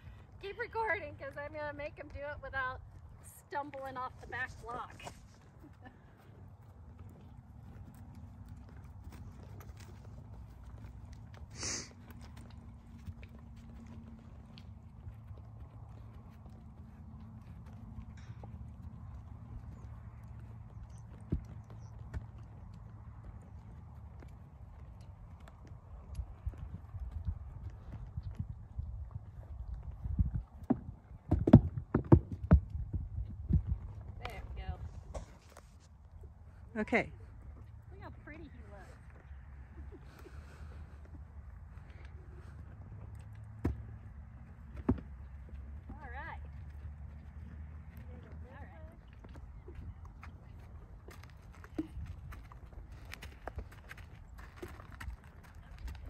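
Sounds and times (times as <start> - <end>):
horse hoofbeats on grass and dirt: 0.0 - 56.0.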